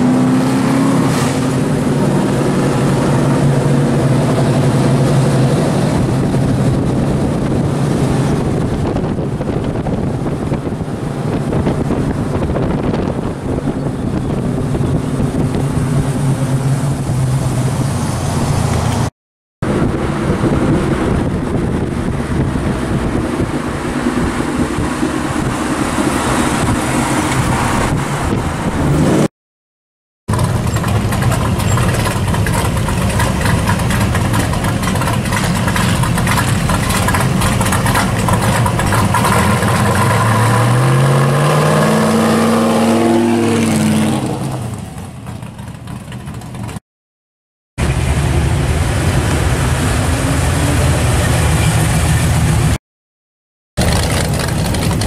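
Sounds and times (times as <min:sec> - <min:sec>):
car engine revving: 0:00.0 - 0:29.3, 0:30.3 - 0:46.8.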